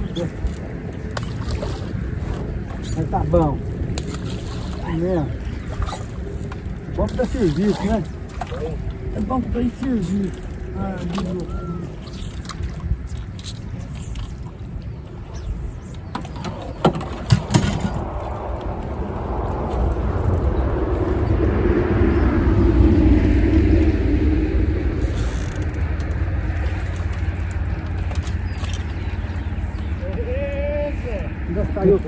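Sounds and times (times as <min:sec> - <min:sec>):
steady low rumble: 0:00.0 - 0:32.0
vehicle passing on highway: 0:18.0 - 0:30.0.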